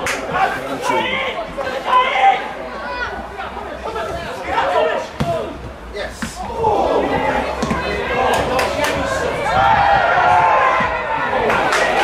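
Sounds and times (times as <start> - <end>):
people shouting: 0.3 - 3.2, 6.2 - 12.0
ball kicked thuds: 5.2 - 6.5, 7.1 - 8.0.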